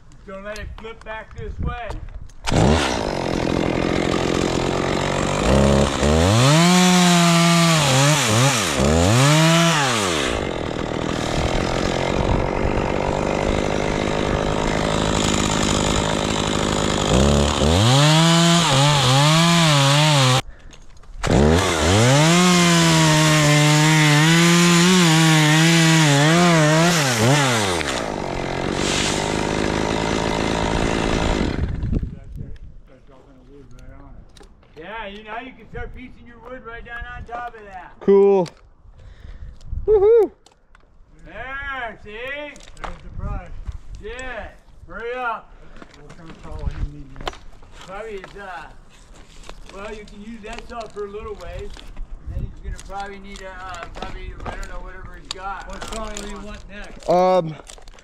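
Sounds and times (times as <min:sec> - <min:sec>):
chainsaw cutting wood: 0:02.4 - 0:20.5, 0:21.2 - 0:32.2, 0:52.8 - 0:58.0.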